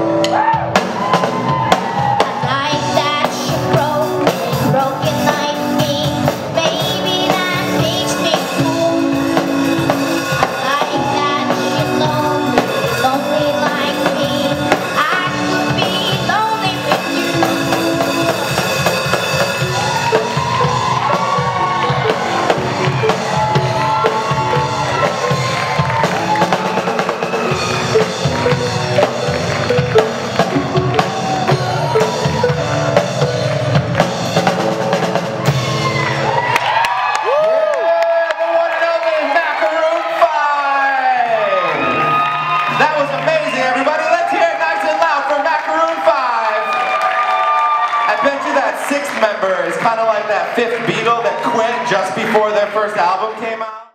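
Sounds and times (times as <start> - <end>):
electric guitars: 0.0 - 37.9
bass guitar: 0.0 - 53.6
drum kit: 0.0 - 53.6
keyboard: 0.0 - 53.9.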